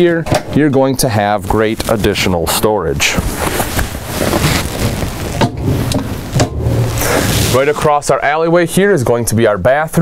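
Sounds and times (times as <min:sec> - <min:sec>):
rustling handling noise: 0:01.2 - 0:08.2.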